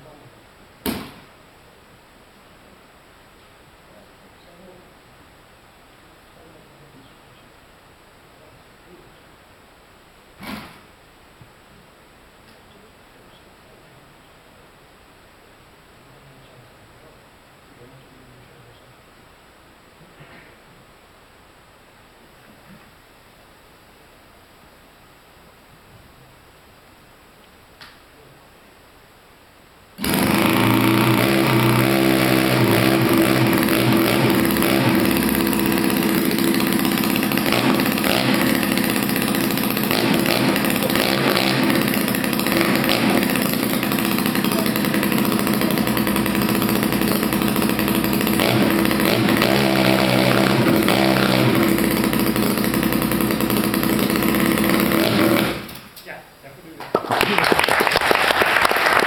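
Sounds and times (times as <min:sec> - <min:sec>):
single-cylinder engine running: 0:30.0 - 0:55.9
applause: 0:56.8 - 0:59.0.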